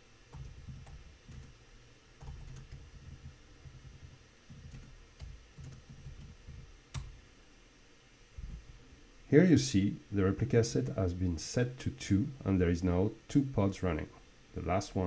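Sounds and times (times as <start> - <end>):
soft keyboard typing: 0.3 - 1.6, 2.2 - 7.1.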